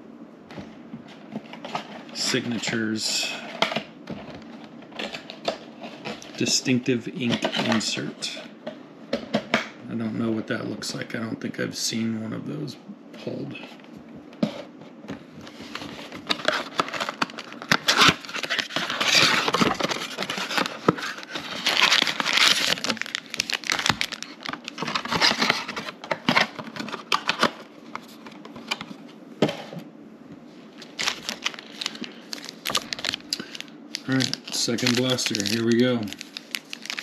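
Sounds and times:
foil packs crackling and rustling: 15.4 - 28.9, 30.8 - 37.0
cardboard packaging tearing: 16.2 - 27.6, 30.8 - 37.0.

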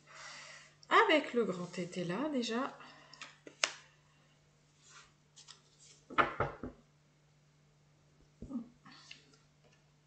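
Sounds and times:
cards being handled: 5.4 - 6.2.

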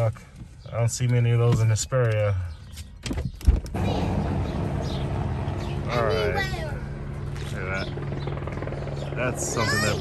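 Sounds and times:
helicopter drone overhead: 3.8 - 10.0.

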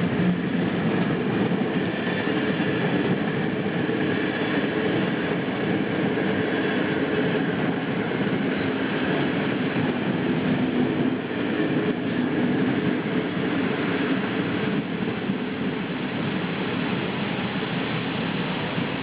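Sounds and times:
train wheels rumbling on rail: 0.0 - 19.0.

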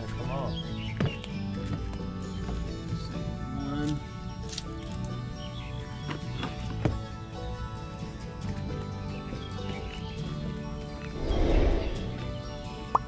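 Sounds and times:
background music with held notes: 0.0 - 13.0.

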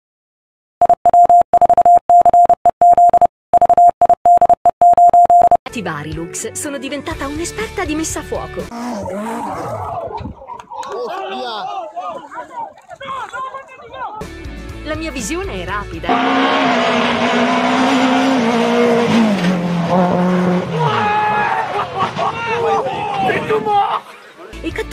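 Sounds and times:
morse code beeps: 0.8 - 5.6
rally car engine at high revs: 8.7 - 9.8, 16.1 - 21.1.

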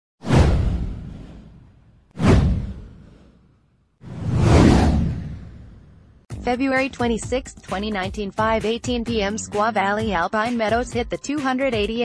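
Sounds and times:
deep whoosh: 0.2 - 3.4, 4.0 - 6.2.

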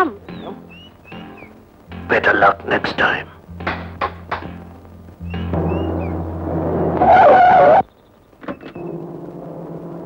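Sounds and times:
low steady hum: 1.6 - 7.1
car tyres screeching: 6.8 - 7.8.

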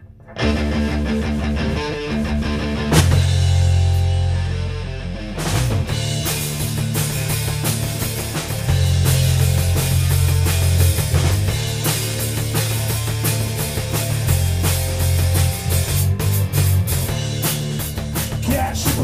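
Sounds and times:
bass guitar: 0.0 - 19.0
electric guitar: 0.0 - 19.0
drum kit: 0.4 - 19.0.

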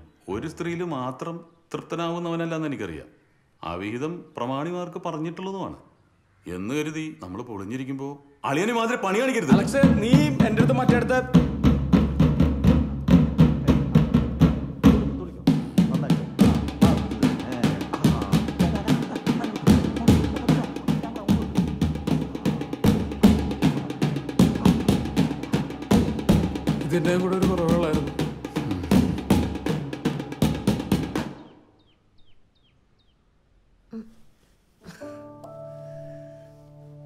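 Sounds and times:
drummers beating steady rhythm: 9.5 - 31.5
background music: 14.8 - 31.4, 34.9 - 37.0
small bird chirping: 31.3 - 33.4.

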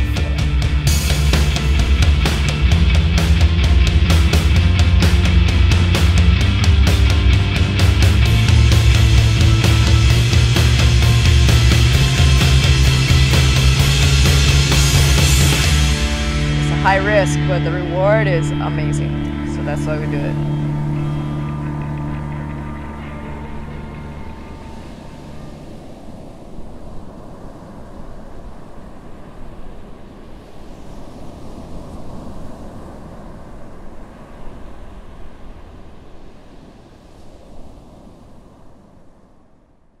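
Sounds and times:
held music chord: 0.0 - 25.7
rushing rumbling noise: 0.0 - 36.8.

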